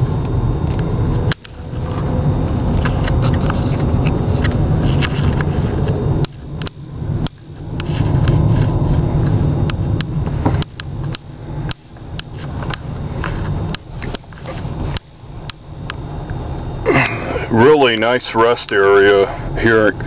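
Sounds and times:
car interior rumble: 0.0 - 20.0.

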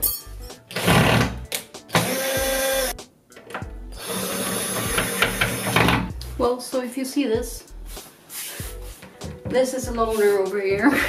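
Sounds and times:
cordless drill-driver running: 2.0 - 3.0, 4.0 - 6.0.

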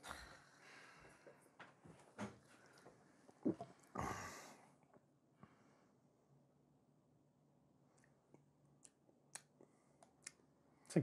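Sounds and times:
man gulping soda: 2.7 - 4.2.

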